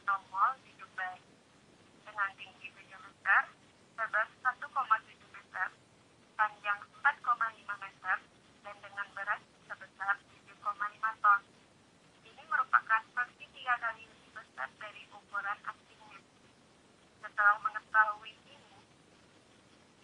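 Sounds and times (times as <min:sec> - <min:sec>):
woman narrating over telephone: 0:00.0 - 0:01.3, 0:02.0 - 0:05.8, 0:06.4 - 0:11.5, 0:12.3 - 0:16.3, 0:17.2 - 0:18.9.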